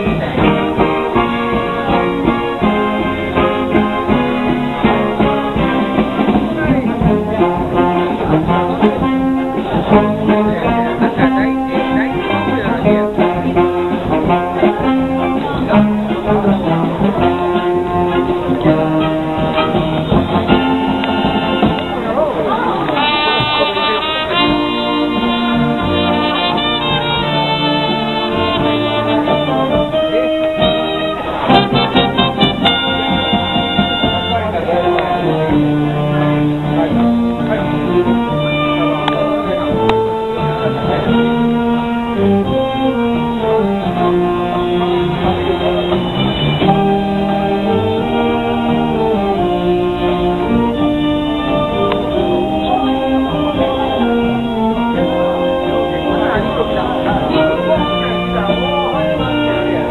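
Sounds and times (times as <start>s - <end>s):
wind band playing: 0.0s - 59.9s.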